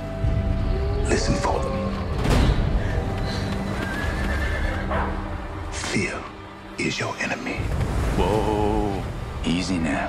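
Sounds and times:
hoofbeats: 0:02.9 - 0:05.2
horse whinnying: 0:03.8 - 0:05.2.

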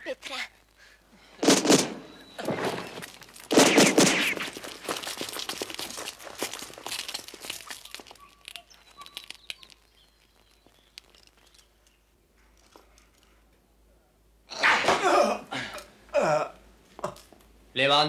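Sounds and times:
gunfire: 0:01.4 - 0:04.7
faint bird chirps: 0:02.0 - 0:03.2, 0:07.6 - 0:12.2.

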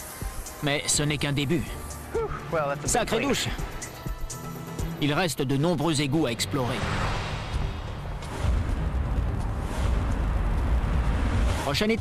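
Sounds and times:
deep low rumble: 0:06.6 - 0:12.0.

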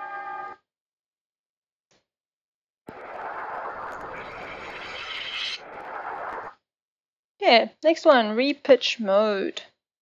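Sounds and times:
grainy wash of noise: 0:02.9 - 0:06.5.

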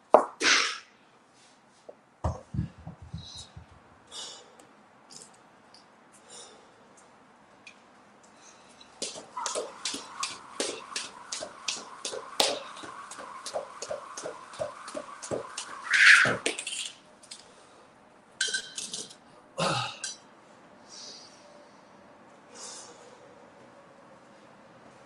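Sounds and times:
steady hum: 0:08.5 - 0:18.8
jump rope striking floor: 0:09.0 - 0:16.7.

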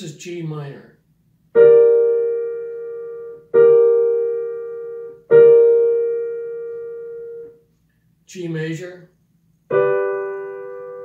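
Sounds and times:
piano chord: 0:01.6 - 0:07.6, 0:09.7 - 0:11.0.

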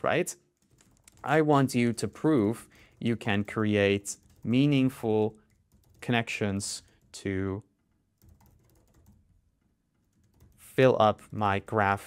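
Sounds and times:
computer keyboard typing: 0:00.6 - 0:07.2, 0:08.1 - 0:09.4, 0:10.0 - 0:11.8.

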